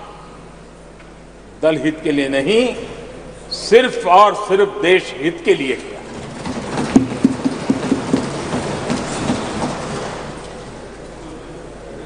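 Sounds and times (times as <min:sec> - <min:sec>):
people thumping wooden desks: 0:06.0 - 0:11.1.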